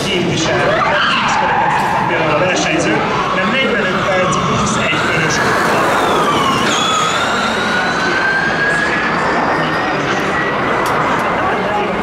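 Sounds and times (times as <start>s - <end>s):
electric car drivetrain whining: 0.4s - 11.9s.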